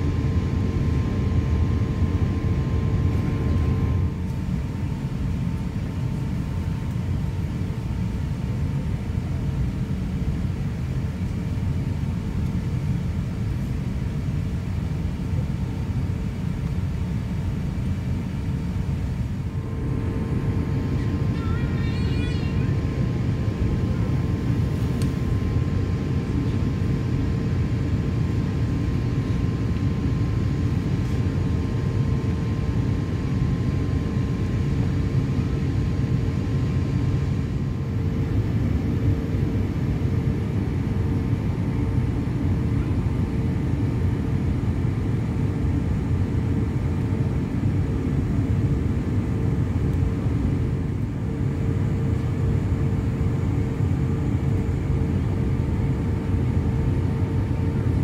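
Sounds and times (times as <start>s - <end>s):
jet engines idling: 0.0s - 58.0s
steady cabin hum: 0.0s - 58.0s.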